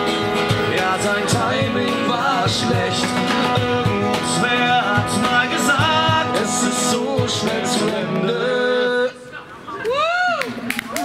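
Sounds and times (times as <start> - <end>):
cajon drum: 0.0 - 8.3
acoustic guitar: 0.0 - 9.3.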